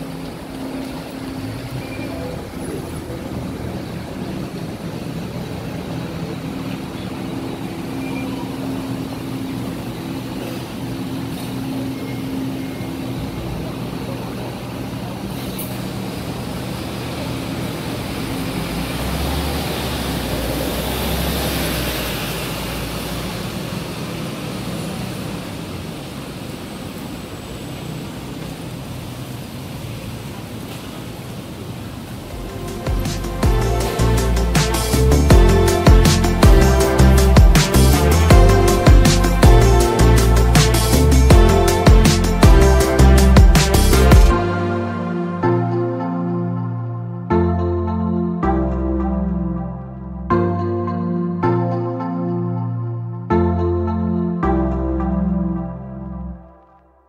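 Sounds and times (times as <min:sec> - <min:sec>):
diesel bus engine: 0:00.0 - 0:50.4.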